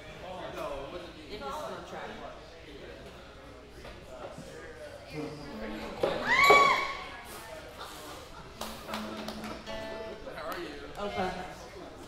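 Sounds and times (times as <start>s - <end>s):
acoustic guitar notes: 9.1s - 10.3s.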